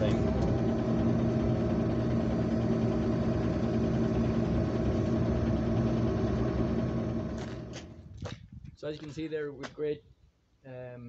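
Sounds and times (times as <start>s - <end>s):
tractor engine running under load: 0.0s - 8.3s.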